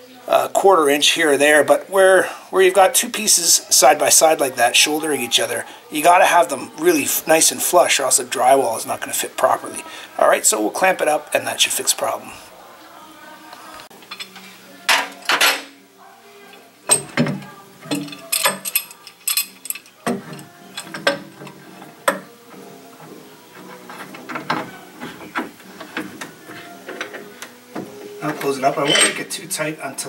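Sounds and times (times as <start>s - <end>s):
metal clamps clinking and knocking: 16.9s - 22.3s, 28.6s - 29.3s.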